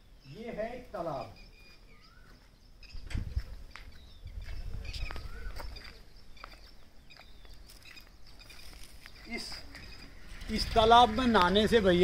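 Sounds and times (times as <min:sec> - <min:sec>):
faint footsteps on brick: 0:01.6 - 0:11.7
man speaking: 0:10.4 - 0:12.0.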